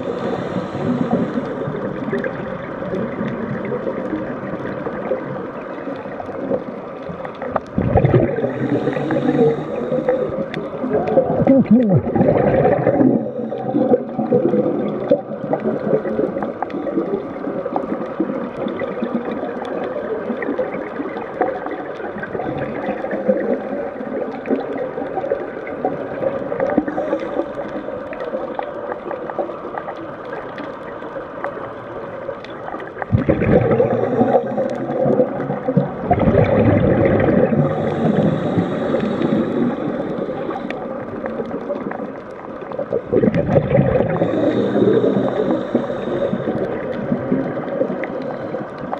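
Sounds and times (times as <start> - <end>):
scuba regulator bubbling: 0.0 - 48.9
underwater rush and gurgle: 0.0 - 48.9.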